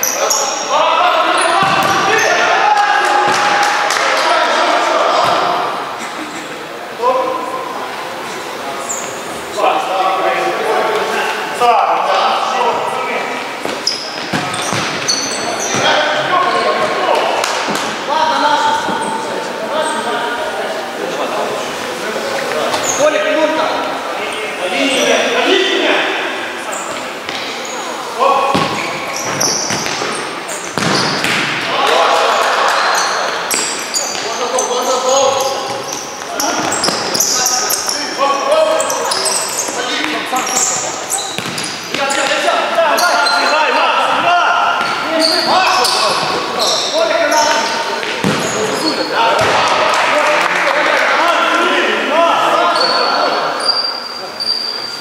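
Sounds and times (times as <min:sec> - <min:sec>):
players calling out: 0:00.0 - 0:21.0, 0:21.8 - 0:55.0
ball kicked and bouncing: 0:13.6 - 0:15.1, 0:30.8 - 0:31.6, 0:41.4 - 0:41.7, 0:48.0 - 0:48.5.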